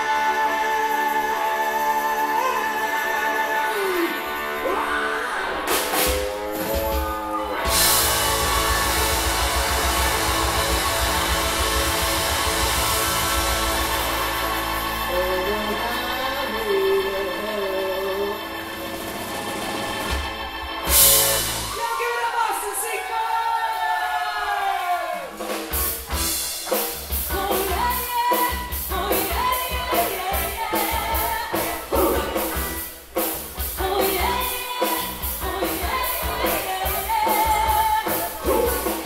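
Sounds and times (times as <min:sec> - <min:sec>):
live soul band: 0:00.0 - 0:22.0, 0:25.4 - 0:39.0.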